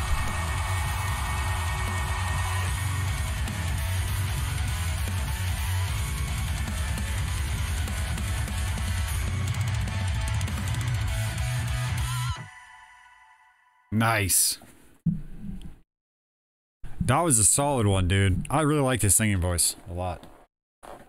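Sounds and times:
metal song with synths: 0.0s - 12.5s.

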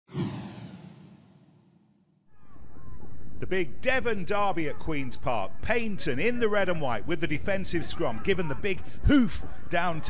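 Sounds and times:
whoosh: 0.1s - 2.1s.

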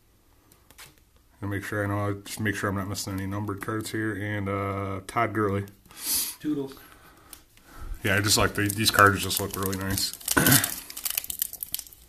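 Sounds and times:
foil wrapper tearing and crinkling: 8.1s - 12.0s.

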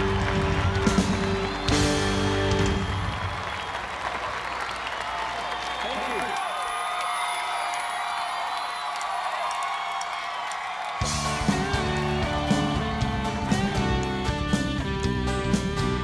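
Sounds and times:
live band music: 0.0s - 3.2s, 11.0s - 16.0s
crowd applauding and cheering: 0.0s - 16.0s.

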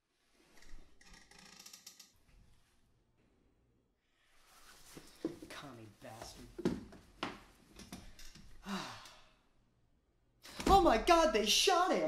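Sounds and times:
man sighing: 8.6s - 9.5s.

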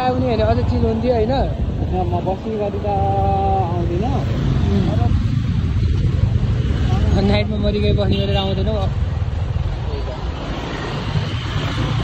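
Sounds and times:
wind noise on microphone: 0.0s - 9.8s.

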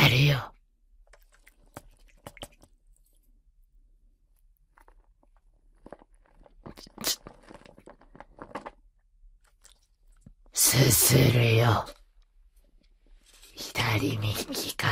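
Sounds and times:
soft wet noodle noises: 0.6s - 10.6s.

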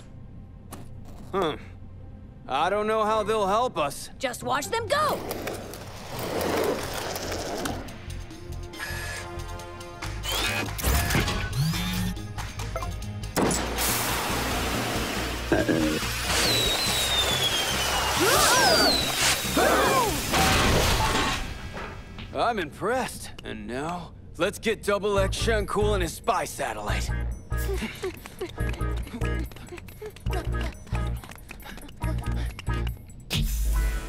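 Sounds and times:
background music: 1.8s - 22.8s, 23.8s - 34.0s
mechanical noises: 10.0s - 12.2s
loud cartoon crash: 13.4s - 14.4s, 16.3s - 22.0s
falling whistles: 16.3s - 20.0s.

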